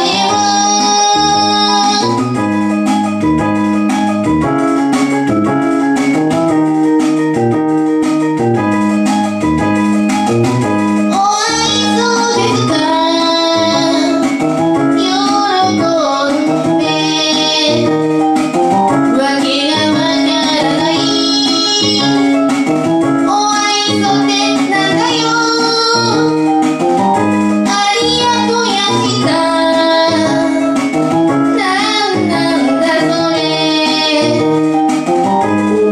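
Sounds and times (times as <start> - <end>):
woman singing pop song: 0.0 - 2.2, 11.1 - 14.4, 15.0 - 18.2, 19.1 - 22.3, 23.3 - 26.4, 27.7 - 30.8, 31.4 - 34.6
held keyboard chords: 0.0 - 35.9.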